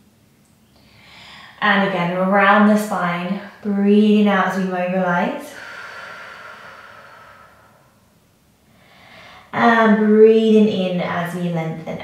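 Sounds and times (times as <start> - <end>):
woman's soft out-breath: 0.8 - 1.6, 5.5 - 8.0, 8.7 - 9.5.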